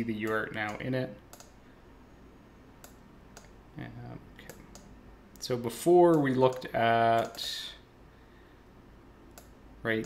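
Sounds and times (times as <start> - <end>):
computer mouse clicks: 0.2 - 1.6, 2.8 - 3.6, 4.4 - 5.5, 6.1 - 7.5, 9.3 - 9.6.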